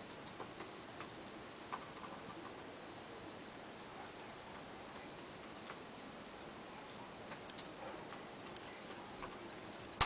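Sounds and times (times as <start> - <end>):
faint clicks and taps: 0.0 - 2.7, 4.5 - 5.8, 6.4 - 6.6, 7.3 - 9.9
steady low hiss: 0.0 - 10.0.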